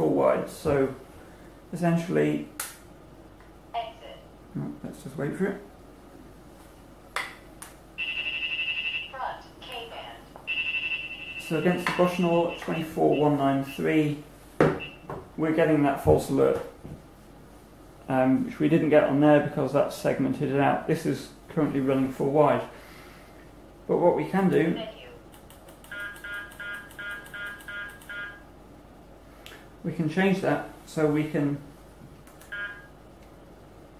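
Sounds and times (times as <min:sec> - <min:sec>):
short electronic beeps: 0:14.8 - 0:15.1.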